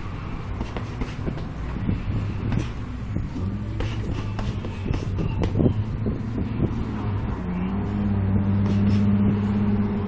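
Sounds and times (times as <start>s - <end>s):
steady low rumble: 0.0s - 10.0s
punches thudding on punching bag: 0.6s - 1.5s.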